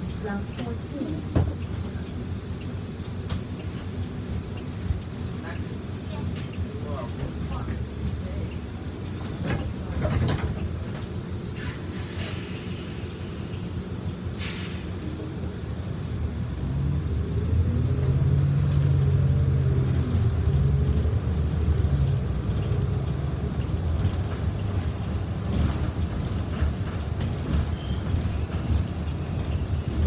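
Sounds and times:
bus engine and road rumble: 0:00.0 - 0:30.0
brief hiss: 0:14.4 - 0:15.0.

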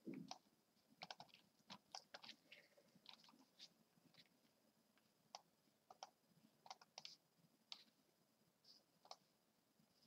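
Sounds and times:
computer mouse clicks: 0:00.1 - 0:02.4, 0:05.3 - 0:07.9, 0:09.0 - 0:09.3.

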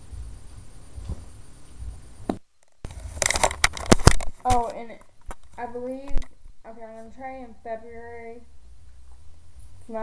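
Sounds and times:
clicks and knocks on microphone: 0:02.3 - 0:06.4
camera handling noise: 0:02.9 - 0:04.7.

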